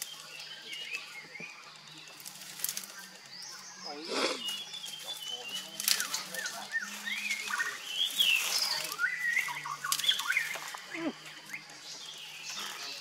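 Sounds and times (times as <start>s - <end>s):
small birds chirping: 0.0s - 13.0s
knife snapping branches: 2.2s - 3.0s, 5.8s - 6.3s, 9.8s - 10.3s
rustling brush: 4.0s - 10.8s.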